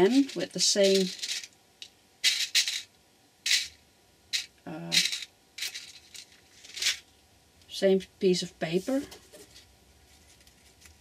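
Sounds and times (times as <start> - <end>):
metal eyelets rattling in plastic box: 0.0 - 1.5, 2.2 - 2.9, 3.5 - 3.8, 4.4 - 7.0.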